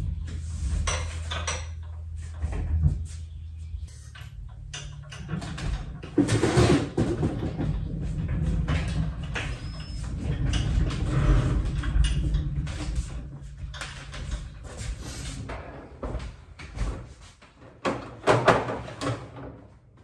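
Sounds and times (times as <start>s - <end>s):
metal knocks and clanks: 0.0s - 17.1s
continuous low rumble: 0.0s - 17.2s.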